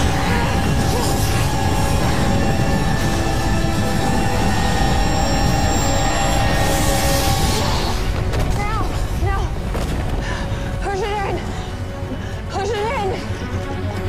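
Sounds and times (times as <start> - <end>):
hissing swell: 0.0 - 8.3
low rumble of sound effects: 0.0 - 12.3
dramatic film score: 0.0 - 14.0.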